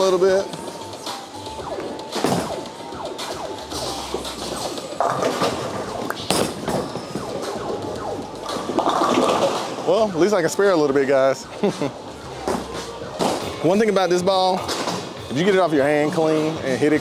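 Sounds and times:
background music: 0.0s - 17.0s
people chatting: 9.9s - 11.9s, 13.6s - 14.7s, 15.3s - 17.0s.

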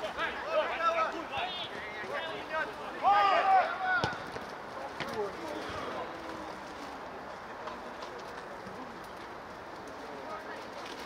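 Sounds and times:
footballers calling and shouting: 0.0s - 11.0s.

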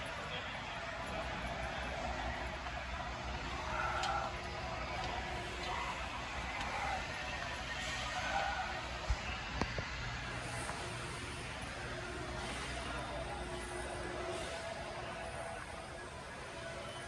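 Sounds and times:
faint background music: 0.0s - 17.0s
indoor hall room noise: 0.0s - 17.0s.

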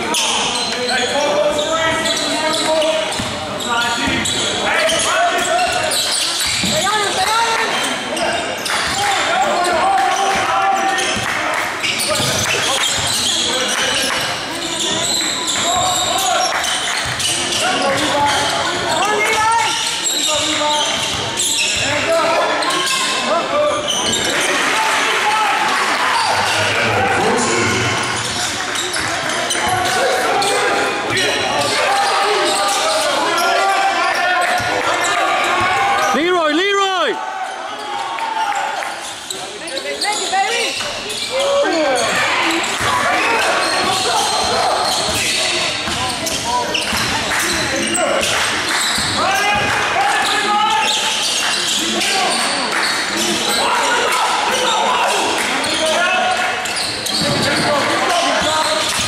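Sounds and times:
indistinct shouts echoing: 0.0s - 59.0s.

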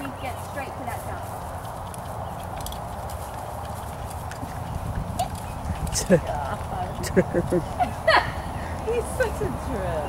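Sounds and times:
horse hoofbeats on grass: 0.0s - 10.0s.

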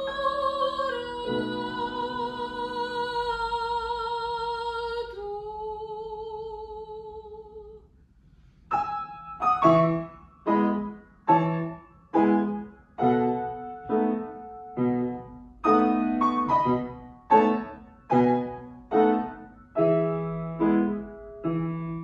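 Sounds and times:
piano chords: 0.0s - 3.3s, 8.7s - 22.0s
soprano singing with vibrato: 0.0s - 7.8s.

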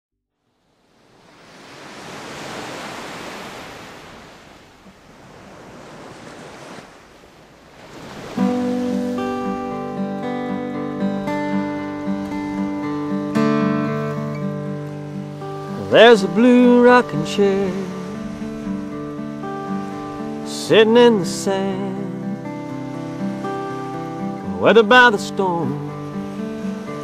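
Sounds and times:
ocean surf washing in: 0.5s - 27.0s
acoustic guitar music: 8.3s - 27.0s.

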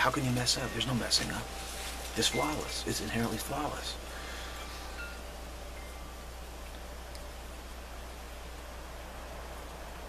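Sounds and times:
faint chime-like tones: 0.0s - 7.6s
low hum and hiss: 0.0s - 10.0s.

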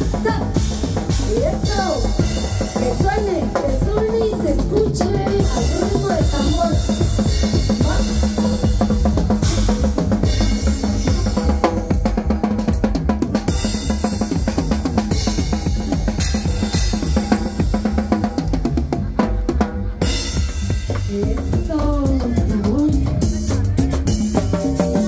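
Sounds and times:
drum kit beat: 0.0s - 25.0s
live band playing: 0.0s - 25.0s.

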